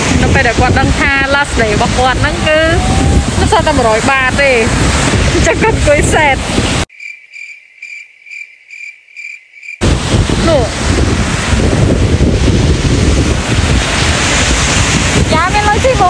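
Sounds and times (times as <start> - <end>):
surf on a beach: 0.0 - 6.9, 9.8 - 16.0
wind on microphone: 0.0 - 6.9, 9.8 - 16.0
cricket chirping: 6.9 - 9.8.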